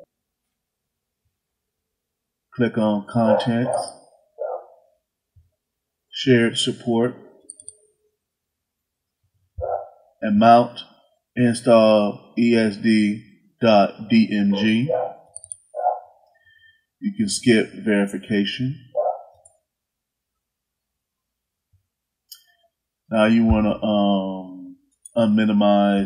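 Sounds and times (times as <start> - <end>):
person speaking: 2.6 - 4.0, 6.2 - 7.6, 9.6 - 16.0, 17.0 - 19.1, 23.1 - 26.0.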